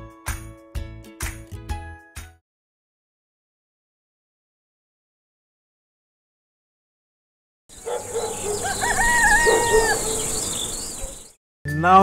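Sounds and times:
high insect buzz: 7.7s - 11.3s
bird chirps: 7.7s - 11.4s
rooster crowing: 7.8s - 11.3s.

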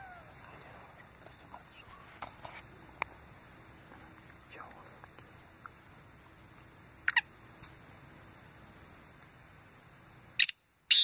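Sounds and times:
bird calling harsh notes: 7.0s - 7.3s, 10.4s - 11.0s.

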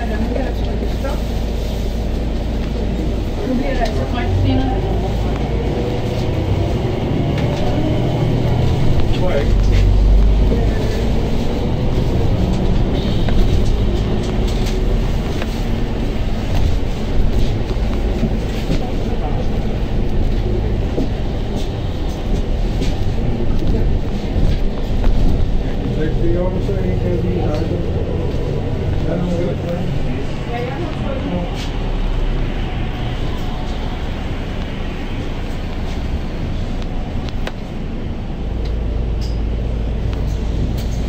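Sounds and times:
bus engine and road rumble: 0.0s - 41.0s
faint passenger voices: 0.0s - 41.0s.

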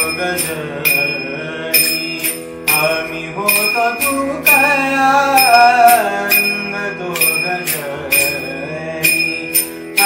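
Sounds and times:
man singing sustained line: 0.0s - 10.0s.

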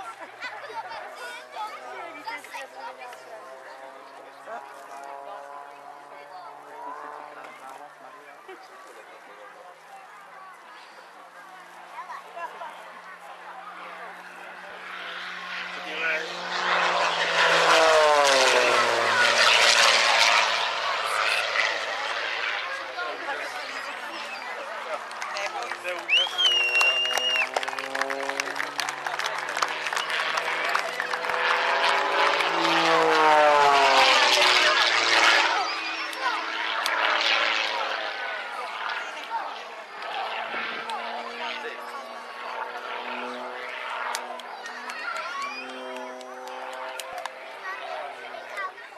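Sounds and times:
chatter of voices: 0.0s - 48.9s
propeller plane engine passing: 0.0s - 48.9s.

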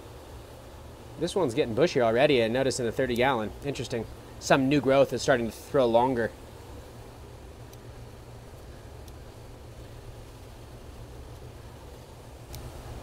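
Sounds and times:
ventilation hum and hiss: 0.0s - 13.0s
faint clicks from plants handled: 12.5s - 12.7s.

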